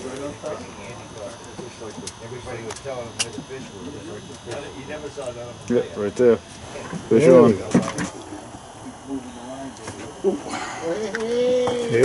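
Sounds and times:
quiet indistinct talk: 0.0s - 12.0s.

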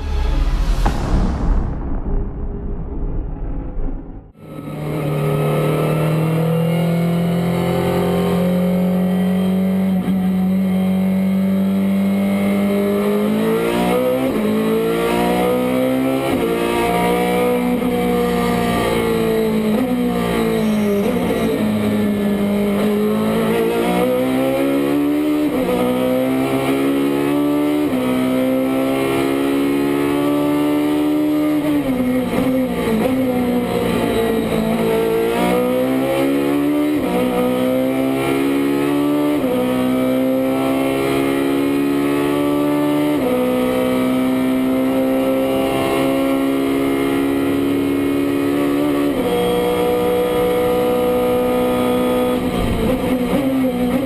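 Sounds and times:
race car engine revving: 4.2s - 54.0s.

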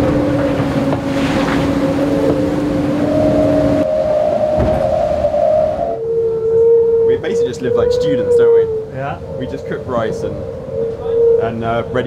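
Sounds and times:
water rushing and splashing: 0.0s - 5.8s
boat humming whine: 0.0s - 12.0s.

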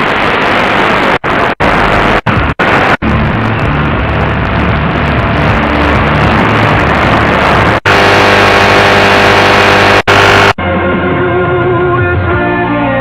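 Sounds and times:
hiss with buzzing whine: 0.0s - 10.6s
low buzzing hum: 0.0s - 10.6s
radio static and noise: 0.0s - 10.6s.

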